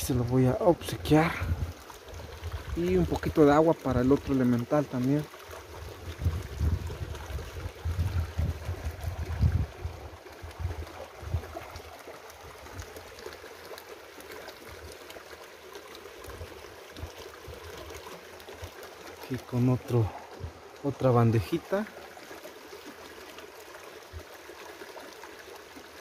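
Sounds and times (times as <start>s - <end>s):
water trickling: 0.0s - 26.0s.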